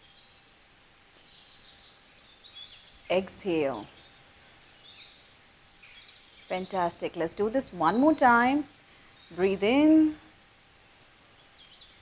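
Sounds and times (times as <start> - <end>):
low steady hiss: 0.0 - 12.0
woman speaking: 3.1 - 3.9, 6.5 - 8.7, 9.3 - 10.3.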